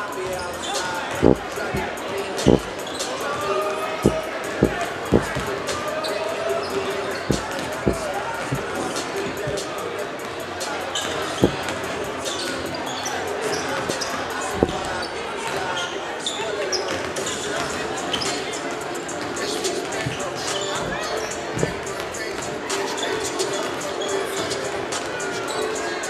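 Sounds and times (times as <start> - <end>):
crowd chatter: 0.0 - 26.0
basketballs bouncing on hardwood: 1.1 - 2.8, 4.0 - 5.6, 7.2 - 9.7, 11.4 - 11.7, 21.6 - 21.9.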